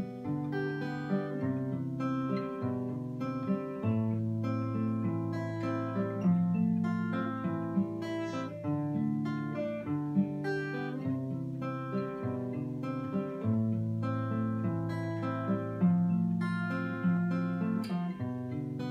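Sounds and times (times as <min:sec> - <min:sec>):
solo acoustic guitar folk tune: 0:00.0 - 0:18.9.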